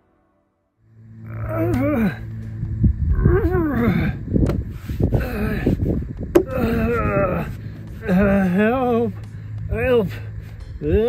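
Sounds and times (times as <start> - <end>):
man groaning and grunting: 1.3 - 2.3, 3.2 - 4.3, 6.4 - 9.1
sharp knock: 6.4 - 6.6.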